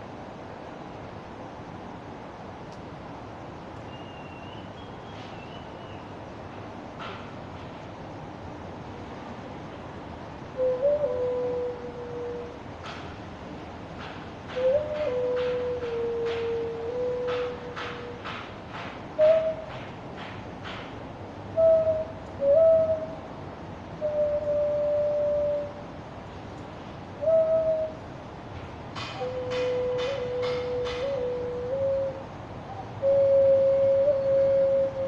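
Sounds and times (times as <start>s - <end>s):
vessel flute slow melody: 10.5s - 12.6s, 14.5s - 18.4s, 19.2s - 19.8s, 21.6s - 23.3s, 24.0s - 26.0s, 27.2s - 28.0s, 29.0s - 35.0s.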